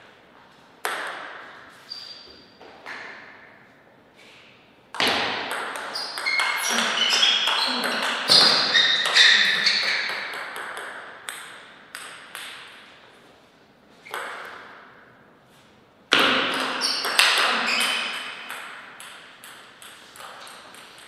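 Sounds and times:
ball bouncing on floor: 0.8s - 3.4s, 4.9s - 12.9s, 14.0s - 14.8s, 16.1s - 21.0s
ping pong ball clicks: 9.8s - 12.8s, 14.1s - 14.7s, 16.5s - 21.0s.

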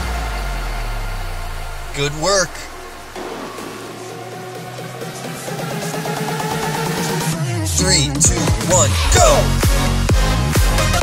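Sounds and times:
electronic workout music: 1.0s - 11.0s.

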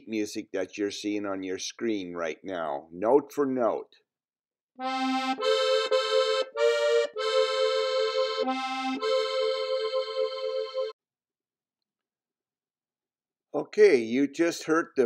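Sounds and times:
accordion playing waltz melody: 4.8s - 11.0s.

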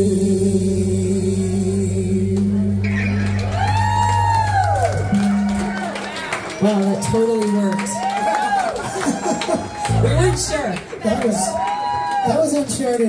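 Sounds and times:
rock band holding a chord: 9.7s - 10.6s.

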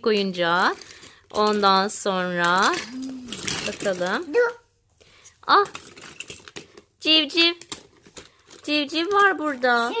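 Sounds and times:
plastic toys clicking together: 0.1s - 4.6s, 5.5s - 9.6s.

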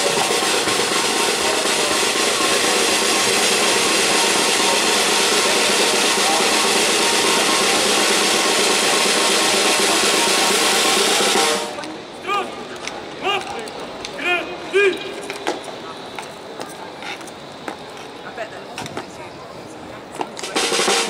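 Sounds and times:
side drum roll: 0.0s - 12.0s, 20.1s - 21.0s.

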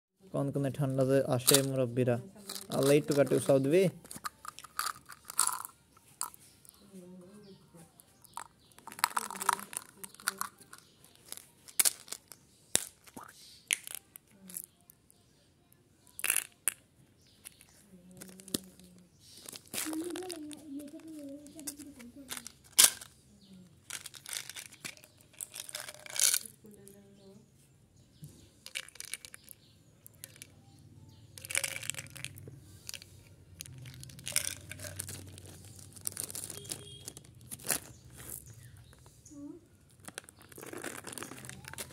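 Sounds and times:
candies rattling: 1.0s - 6.8s, 8.1s - 14.8s, 16.1s - 16.8s, 17.4s - 23.2s, 23.8s - 26.6s, 28.6s - 30.6s, 31.4s - 39.0s, 39.8s - 41.9s
plastic jars clicking open: 1.4s - 1.8s, 2.5s - 6.4s, 8.2s - 14.7s, 16.1s - 16.8s, 17.4s - 23.1s, 23.9s - 26.5s, 28.6s - 30.5s, 31.4s - 39.0s
wrapper crinkling and tearing: 2.5s - 6.3s, 8.3s - 14.7s, 18.2s - 23.1s, 23.9s - 26.5s, 31.4s - 33.0s, 33.6s - 38.7s, 39.9s - 41.9s.

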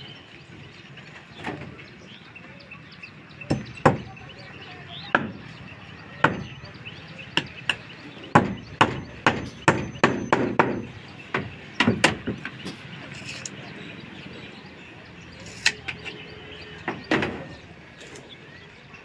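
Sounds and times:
hammer blows on wooden boards: 3.4s - 4.3s, 4.9s - 6.7s, 7.3s - 12.8s.

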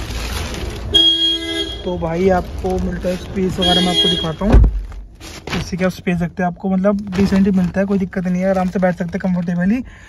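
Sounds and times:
vehicle horn: 0.9s - 2.0s, 3.6s - 4.5s.

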